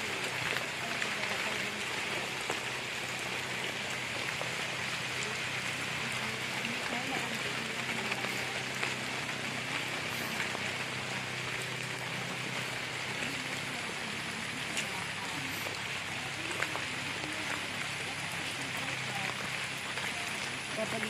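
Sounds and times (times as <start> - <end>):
faint distant voices: 0.0 - 21.0
light rain falling: 0.0 - 21.0.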